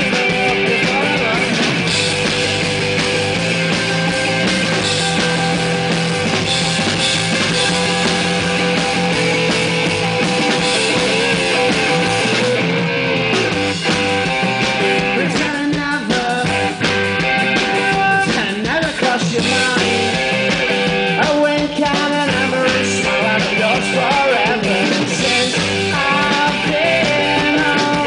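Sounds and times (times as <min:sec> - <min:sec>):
live rock band playing: 0:00.0 - 0:28.0.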